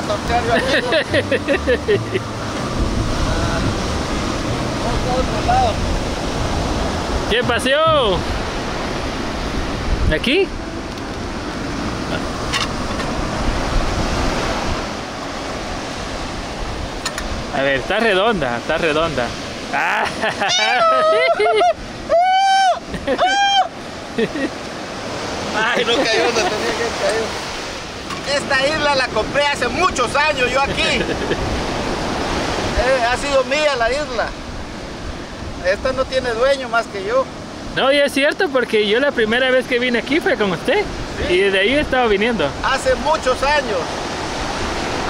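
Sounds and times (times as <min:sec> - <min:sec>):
ocean surf washing onto beach: 0:00.0 - 0:45.0
wind on microphone: 0:02.2 - 0:19.8, 0:40.7 - 0:45.0.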